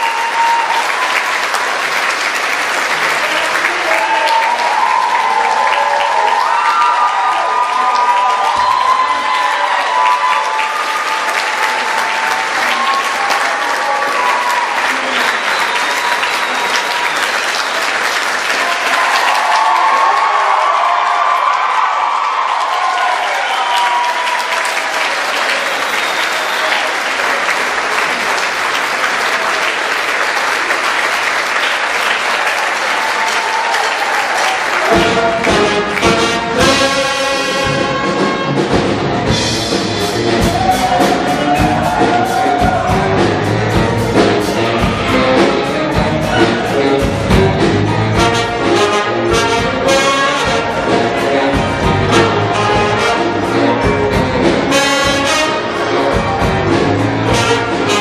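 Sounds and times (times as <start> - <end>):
audience applauding: 0.0 - 58.0
voices shouting and whooping: 40.4 - 43.2.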